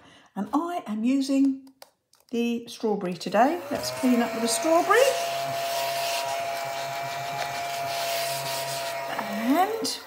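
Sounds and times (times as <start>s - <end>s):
desk vacuum whining: 3.5s - 10.0s.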